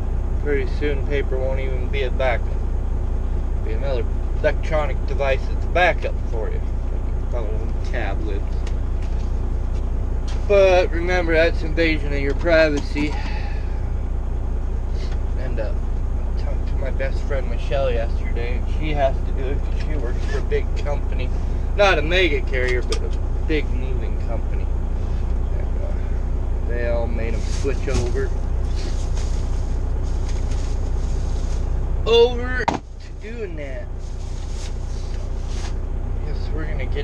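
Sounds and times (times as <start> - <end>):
diesel truck engine idling: 0.0 - 37.0.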